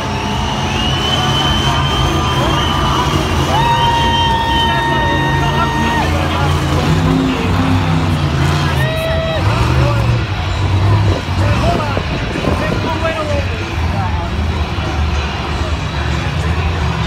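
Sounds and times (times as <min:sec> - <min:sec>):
monster truck engine revving: 0:00.0 - 0:17.0.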